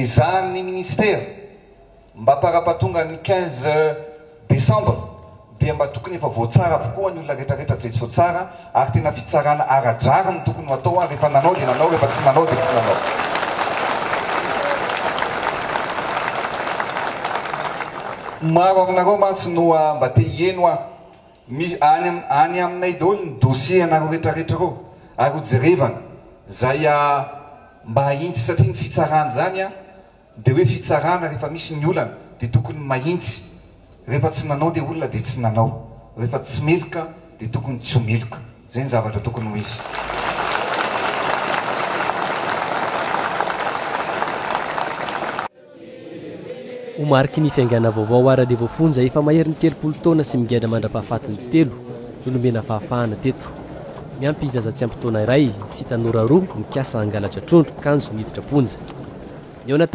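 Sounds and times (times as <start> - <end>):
crowd applauding: 10.6 - 18.7, 39.7 - 45.5, 47.3 - 59.7.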